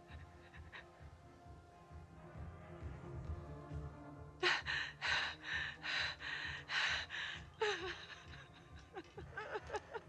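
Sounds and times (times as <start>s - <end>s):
woman panting: 0.0s - 1.1s, 4.4s - 9.6s.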